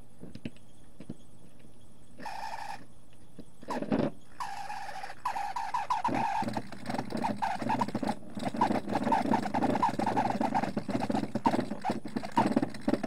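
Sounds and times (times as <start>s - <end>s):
rotary polishing tool whine: 2.2s - 2.9s.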